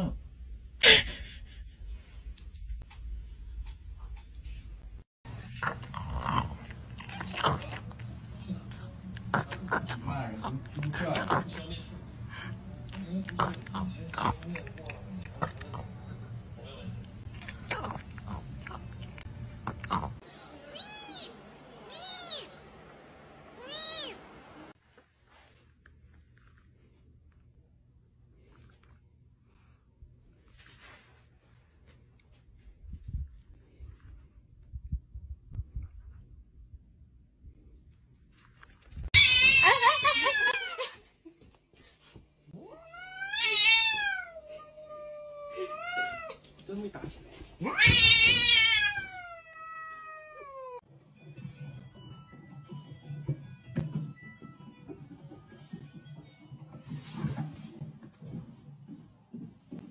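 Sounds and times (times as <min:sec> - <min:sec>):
kitten meowing: 0:21.9 - 0:22.5
cat yowling: 0:39.2 - 0:40.8, 0:42.6 - 0:46.4, 0:47.7 - 0:50.8.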